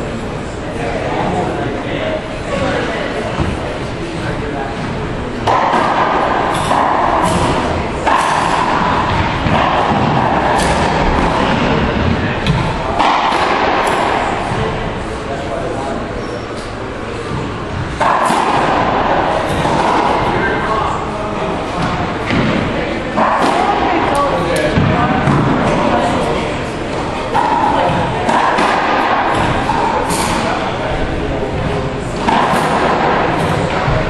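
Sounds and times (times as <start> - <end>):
racquetball hits echoing: 2.5 - 34.0.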